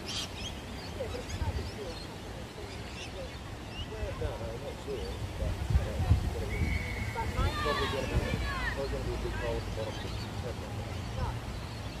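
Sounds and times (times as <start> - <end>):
wind rumble on microphone: 5.1 - 9.9
distant shouts of children: 6.5 - 9.5.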